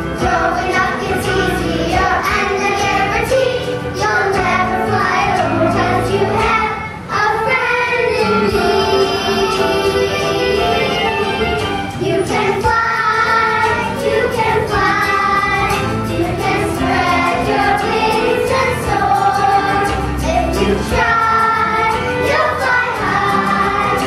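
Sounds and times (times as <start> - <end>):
children singing: 0.0 - 24.0
instrumental accompaniment: 0.0 - 24.0.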